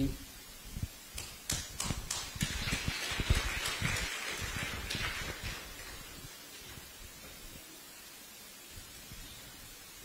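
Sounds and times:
rustling hiss: 0.0 - 10.0.

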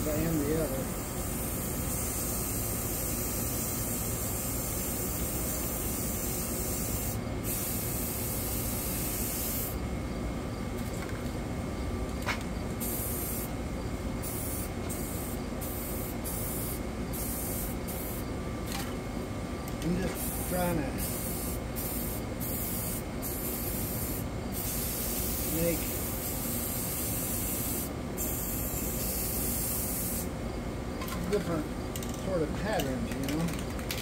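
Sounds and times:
spray paint can hissing: 0.2 - 9.8, 12.8 - 13.6, 14.2 - 18.2, 20.2 - 30.3.

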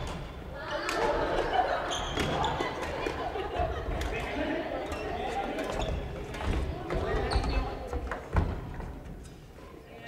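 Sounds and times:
shoes squeaking on wooden floor: 4.9 - 8.5.

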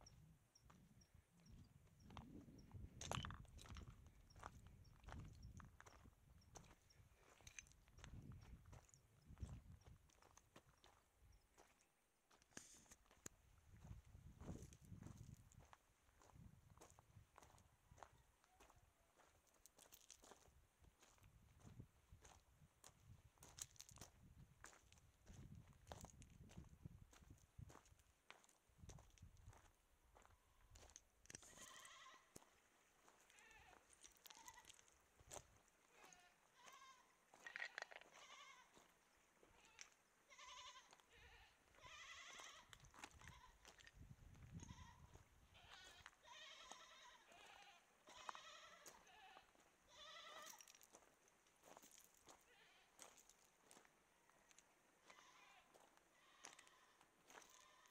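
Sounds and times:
footsteps on gravel: 2.0 - 11.0, 12.3 - 22.4, 23.4 - 39.8, 41.8 - 57.9
goats bleating: 31.4 - 32.4, 39.6 - 43.7, 45.6 - 50.6, 55.1 - 57.9.

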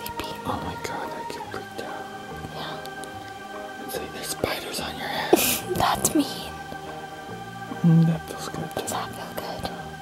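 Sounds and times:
soft breathy whispering: 0.0 - 6.5, 7.8 - 10.0
quiet music with held tones: 0.0 - 10.0.

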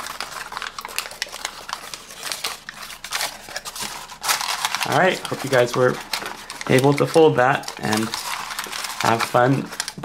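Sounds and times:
folded paper crinkling: 0.0 - 10.0.

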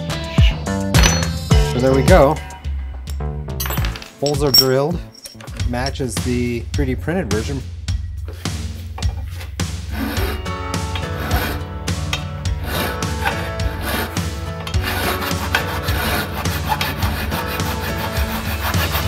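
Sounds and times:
background music: 0.0 - 19.0
hand file rasping on steel: 9.8 - 19.0.

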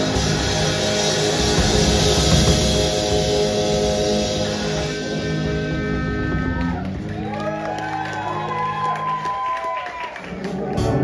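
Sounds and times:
live rock band: 0.0 - 11.0.

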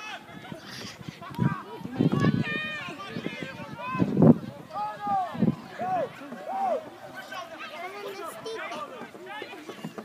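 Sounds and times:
people shouting and calling: 0.0 - 10.0.

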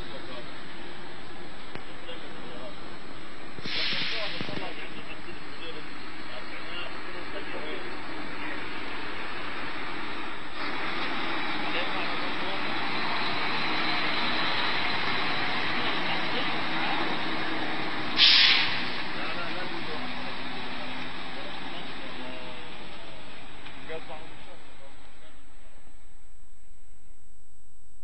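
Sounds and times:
heavy trucks running: 0.0 - 26.5
air brake hiss: 3.6 - 4.5, 18.2 - 19.0.

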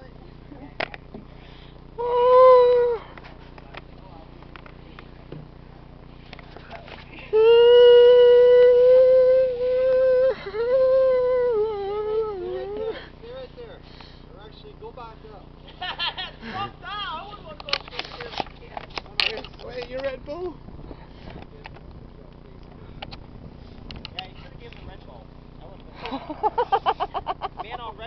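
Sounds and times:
man screaming: 2.0 - 3.1, 7.3 - 13.0
man's broken cries: 2.0 - 3.2, 7.3 - 13.2.

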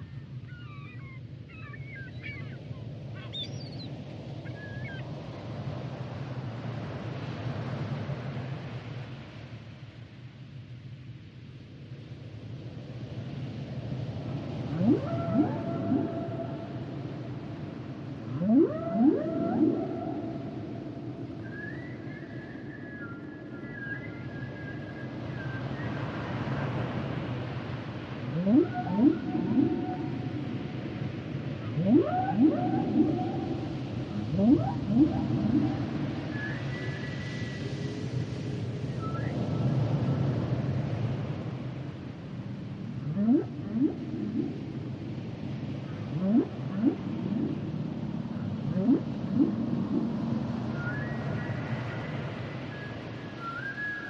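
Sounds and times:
whale high held tones: 14.6 - 24.9, 28.3 - 38.0, 43.0 - 45.0, 45.9 - 54.0
whale rising whoops: 14.7 - 17.4, 18.3 - 23.4, 28.3 - 30.8, 31.7 - 37.7, 48.7 - 51.8.

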